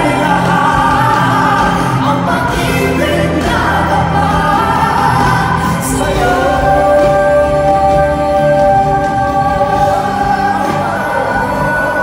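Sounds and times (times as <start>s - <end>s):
backing music: 0.0s - 12.0s
man and woman singing duet: 0.0s - 12.0s.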